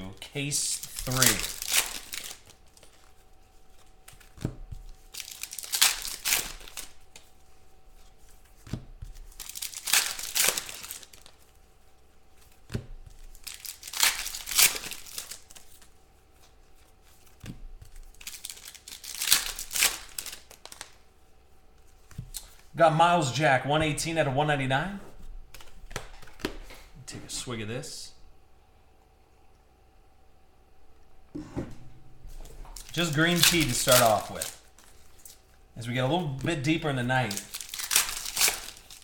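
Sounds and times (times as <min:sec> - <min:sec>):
foil packs tearing and crinkling: 0:00.6 - 0:03.1, 0:04.1 - 0:07.2, 0:09.1 - 0:11.5, 0:13.1 - 0:15.8, 0:18.0 - 0:21.0, 0:32.7 - 0:35.4, 0:36.1 - 0:39.0.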